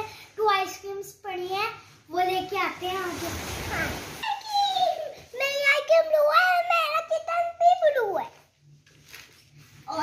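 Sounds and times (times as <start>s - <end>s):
rustling: 8.3s - 10.0s.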